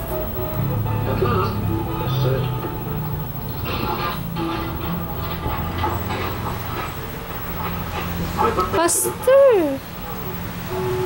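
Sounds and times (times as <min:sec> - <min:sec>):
background music: 0:00.0 - 0:06.6
train running: 0:00.0 - 0:11.0.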